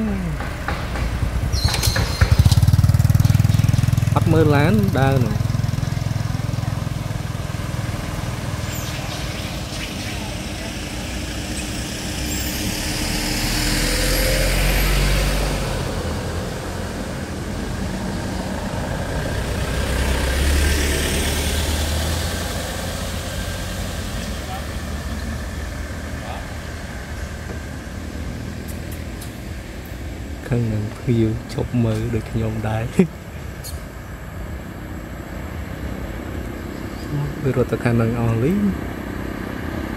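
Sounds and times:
low traffic rumble: 0:00.0 - 0:39.9
vehicles passing by: 0:00.0 - 0:39.9.

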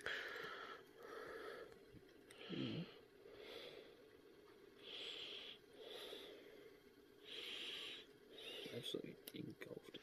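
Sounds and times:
breathing close to microphone: 0:00.0 - 0:04.1, 0:04.8 - 0:08.8.

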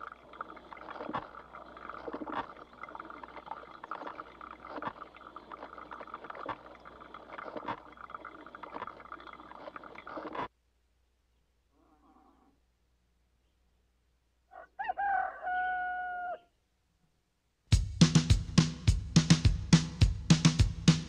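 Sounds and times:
coffee maker gurgling and hissing: 0:00.0 - 0:10.5
rooster crowing: 0:14.5 - 0:16.5.

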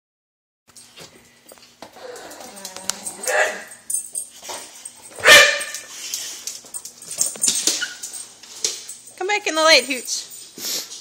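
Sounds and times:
dog whining: 0:01.9 - 0:03.7
dog barking: 0:03.2 - 0:03.7, 0:05.2 - 0:05.9.

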